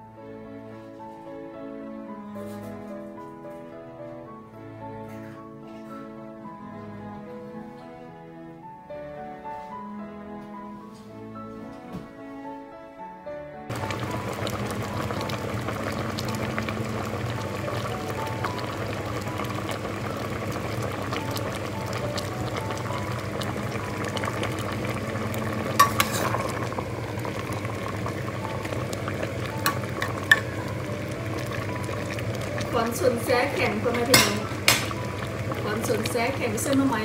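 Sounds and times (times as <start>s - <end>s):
pot of curry bubbling: 13.7s - 37.0s.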